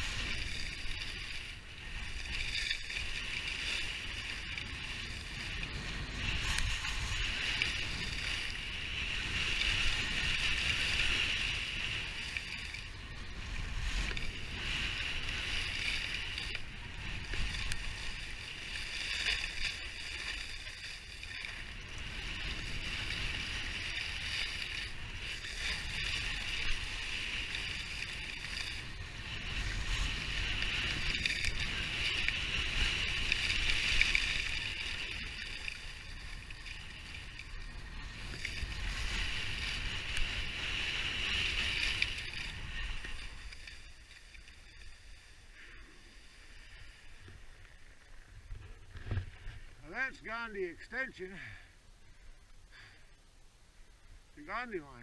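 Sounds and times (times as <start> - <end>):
skis scraping over snow: 0.0 - 53.0, 54.1 - 55.0
low wind rumble: 0.0 - 55.0.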